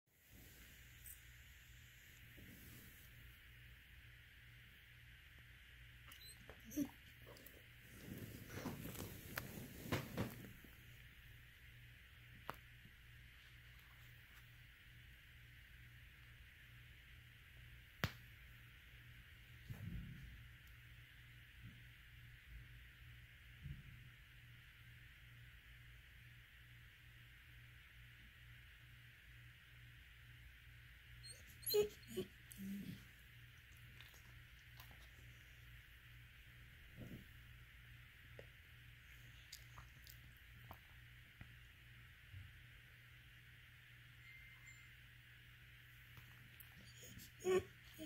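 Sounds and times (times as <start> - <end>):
dog whining softly: 6.1 - 10.3, 31.2 - 33.2, 46.6 - 48.0.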